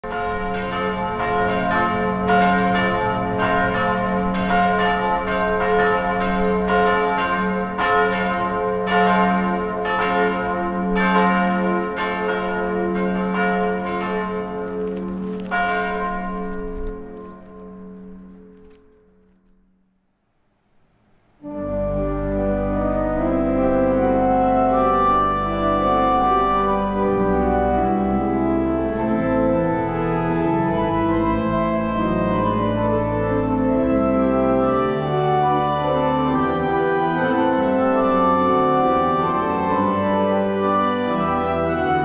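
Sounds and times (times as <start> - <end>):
church bells ringing: 0.0 - 19.5, 21.4 - 42.0.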